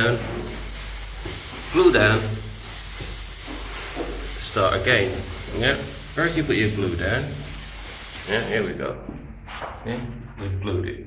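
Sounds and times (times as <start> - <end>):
steady hiss: 0.0 - 8.9.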